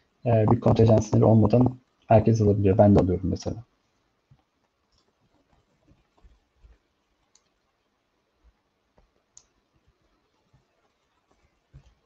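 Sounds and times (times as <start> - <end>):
soft clicks: 4.3 - 7.6, 8.9 - 9.6.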